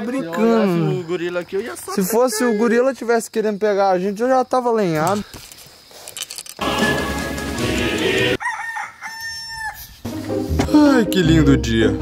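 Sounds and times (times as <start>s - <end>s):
rooster crowing: 8.3s - 9.9s.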